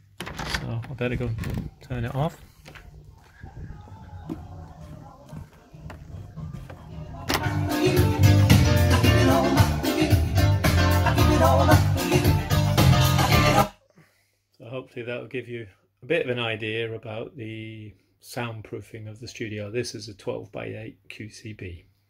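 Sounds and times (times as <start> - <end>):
music from speakers: 6.0 - 13.7.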